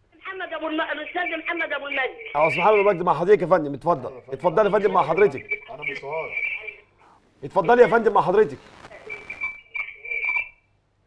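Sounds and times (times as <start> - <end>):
faint broken speech on phone: 4.2 - 10.5
high-pitched telephone line whistle: 5.0 - 6.9, 8.7 - 10.7.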